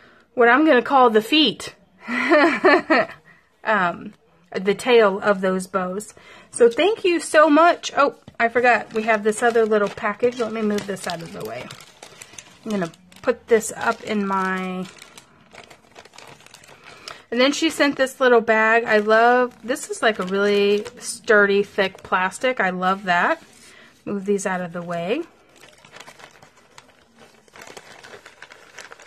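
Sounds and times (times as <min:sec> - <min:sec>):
plastic bag crinkling: 0:06.6 - 0:29.0.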